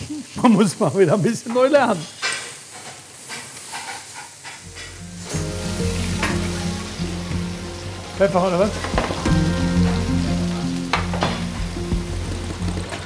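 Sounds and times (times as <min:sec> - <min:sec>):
food sizzling on a grill: 0:00.0 - 0:13.0
background music: 0:04.9 - 0:13.0.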